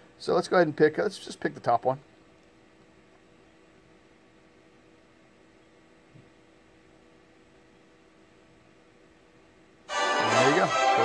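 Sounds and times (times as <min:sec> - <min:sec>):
faint hum and hiss: 0:00.0 - 0:11.0.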